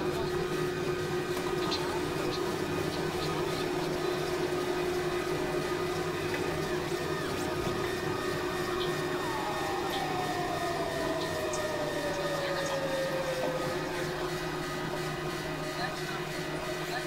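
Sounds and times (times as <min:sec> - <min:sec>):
experimental electronic drone music: 0:05.1 - 0:16.6.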